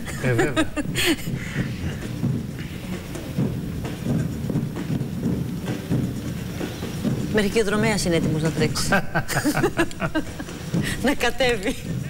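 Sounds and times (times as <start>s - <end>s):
runners' footfalls: 0.0s - 12.0s.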